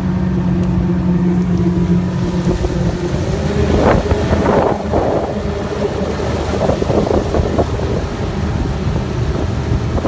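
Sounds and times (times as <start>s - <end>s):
outboard motor running: 0.0s - 10.0s
water rushing along hull: 0.0s - 10.0s
wind buffeting microphone: 0.0s - 10.0s.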